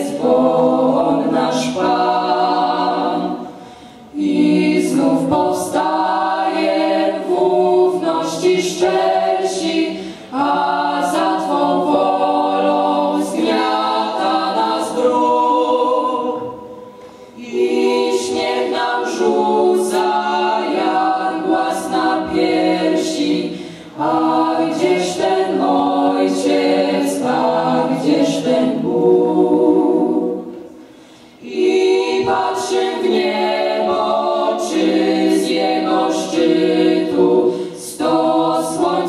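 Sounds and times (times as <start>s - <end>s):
vocal ensemble singing a cappella: 0.0s - 39.0s.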